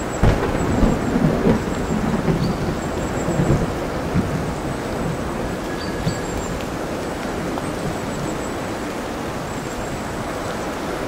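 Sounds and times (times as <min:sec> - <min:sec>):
heavy rain: 0:00.0 - 0:11.0
thunder rumbling: 0:00.0 - 0:11.0.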